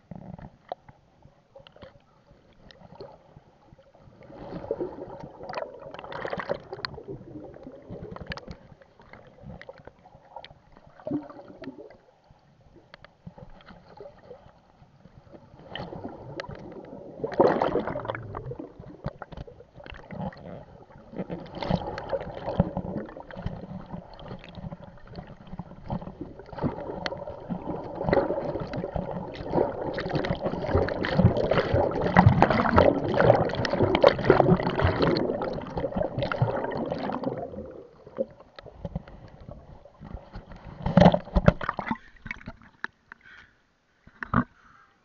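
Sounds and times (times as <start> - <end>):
water sloshing and gurgling: 0.0 - 43.4
swimming splashes: 17.2 - 38.3.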